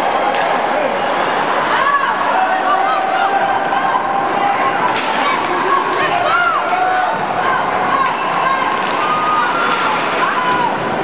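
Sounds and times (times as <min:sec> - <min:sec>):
spectators' voices and shouts: 0:00.0 - 0:11.0.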